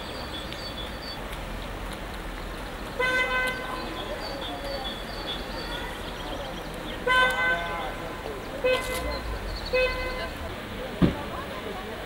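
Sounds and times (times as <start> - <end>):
car horn toot: 3.0 - 3.7, 7.0 - 8.0, 8.6 - 10.4.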